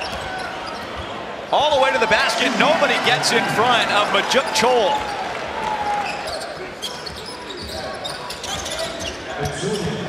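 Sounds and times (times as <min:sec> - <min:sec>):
crowd murmur: 0:02.2 - 0:05.1.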